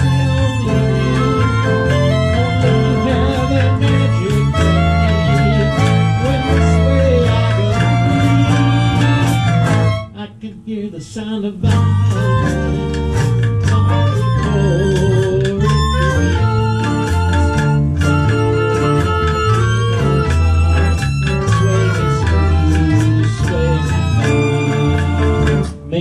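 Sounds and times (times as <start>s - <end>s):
hand percussion: 0.0s - 10.1s, 11.6s - 26.0s
acoustic guitar: 0.0s - 26.0s
bass line: 0.0s - 26.0s.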